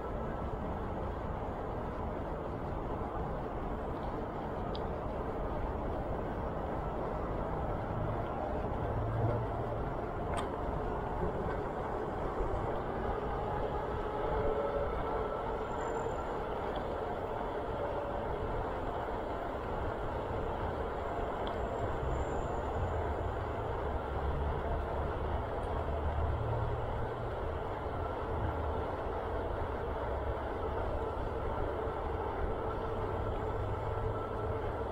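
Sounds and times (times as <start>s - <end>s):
bicycle tyres rolling on asphalt: 0.0s - 34.9s.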